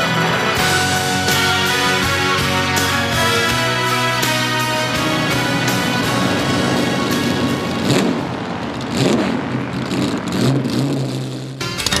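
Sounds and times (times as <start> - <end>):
theme music: 0.0 - 10.7
car passing and revving: 0.0 - 11.6.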